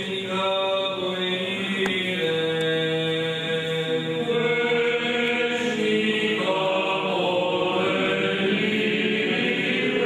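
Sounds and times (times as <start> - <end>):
voices chanting long notes: 3.6 - 10.0.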